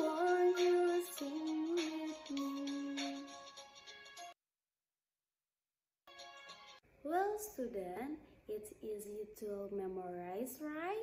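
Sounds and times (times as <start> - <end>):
woman speaking: 7.0 - 11.0.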